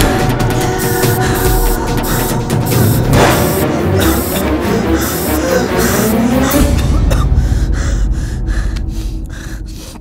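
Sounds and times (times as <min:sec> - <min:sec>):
dramatic film score: 0:00.0 - 0:10.0
deep rumble: 0:03.0 - 0:10.0.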